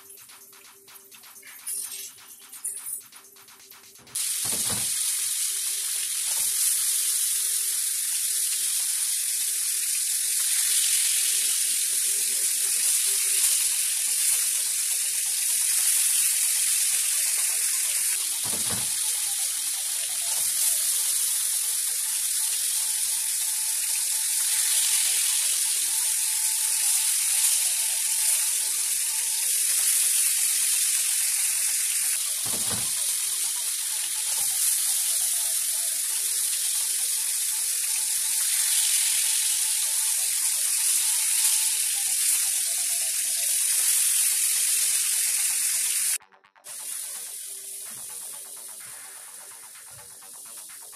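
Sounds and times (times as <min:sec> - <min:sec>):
curry sizzling in a wok: 0:04.2 - 0:50.9.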